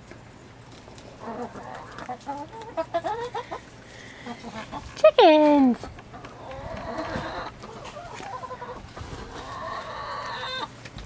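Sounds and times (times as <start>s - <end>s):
hens clucking: 0.1s - 11.0s.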